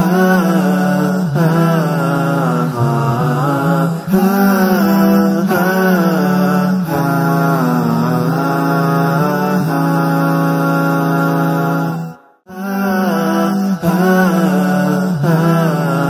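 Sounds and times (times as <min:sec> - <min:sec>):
person chanting ornamented notes: 0:00.0 - 0:16.0.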